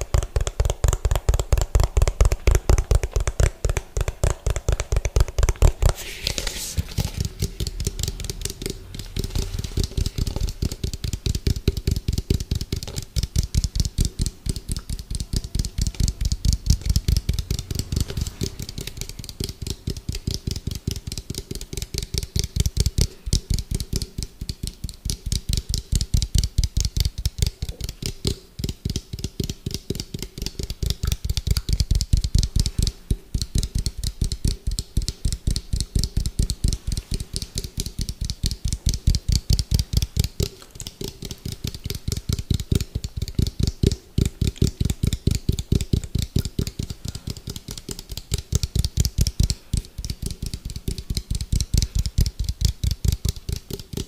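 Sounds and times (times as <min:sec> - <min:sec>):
fingers tapping plastic bowl: 0:00.0 - 0:54.0.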